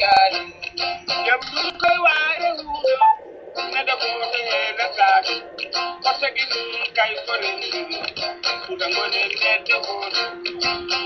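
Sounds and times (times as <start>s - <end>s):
recorded music with singing: 0.0s - 11.0s.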